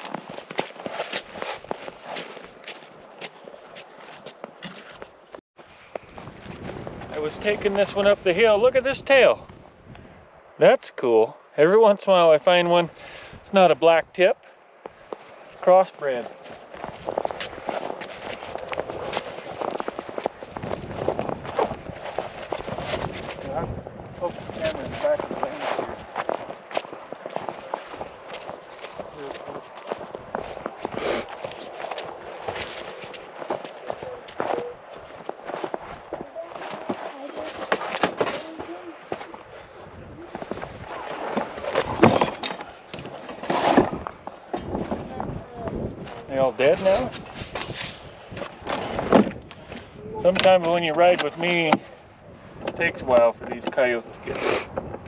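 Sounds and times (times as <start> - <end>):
footsteps crunching on snow: 0.0 - 8.2, 14.8 - 42.1
brushing through dry brush: 24.3 - 26.1.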